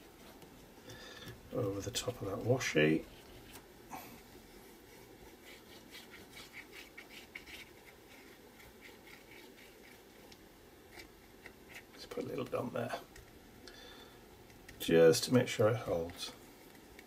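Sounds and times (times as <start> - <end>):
glue nozzle scratching on card: 5.3 - 12.0.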